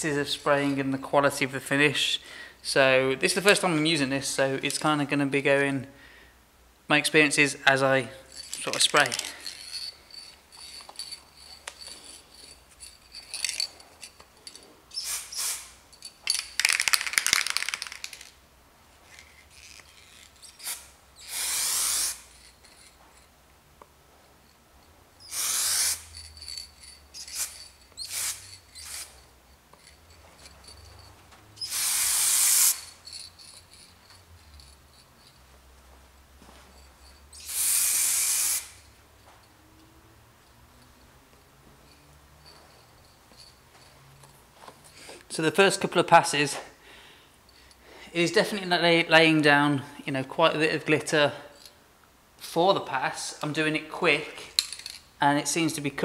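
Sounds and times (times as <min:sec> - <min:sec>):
aerosol spray can hissing: 0:15.0 - 0:15.7, 0:20.6 - 0:22.3, 0:25.3 - 0:26.1, 0:27.2 - 0:29.1, 0:31.6 - 0:32.9, 0:37.4 - 0:38.8.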